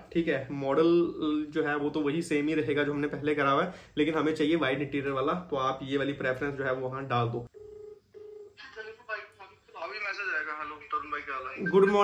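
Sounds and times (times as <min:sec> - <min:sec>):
voice over phone call: 0:08.6 - 0:12.0.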